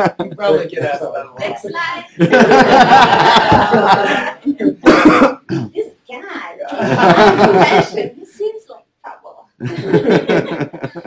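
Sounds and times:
people laughing: 0:00.0 - 0:05.2, 0:06.7 - 0:08.2, 0:09.6 - 0:11.0
person speaking: 0:00.0 - 0:11.0.

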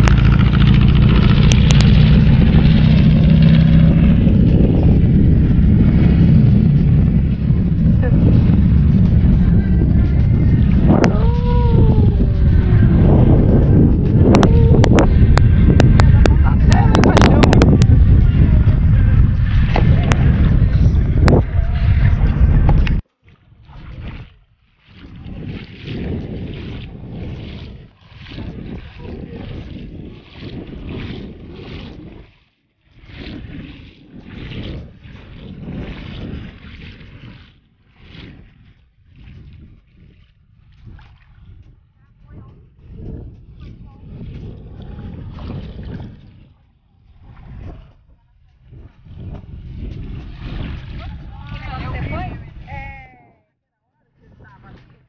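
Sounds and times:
footsteps splashing in shallow water: 0:00.0 - 0:13.1, 0:22.8 - 0:52.6
wind buffeting microphone: 0:00.0 - 0:53.5, 0:54.1 - 0:55.0.

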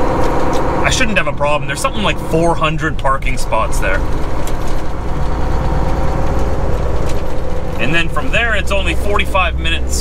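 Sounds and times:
diesel truck engine rumbling: 0:00.0 - 0:10.0
road noise: 0:00.0 - 0:10.0.

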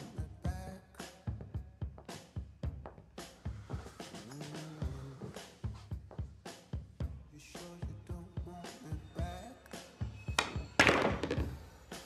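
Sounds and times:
background music: 0:00.0 - 0:12.0
billiard balls clacking: 0:10.4 - 0:11.6.

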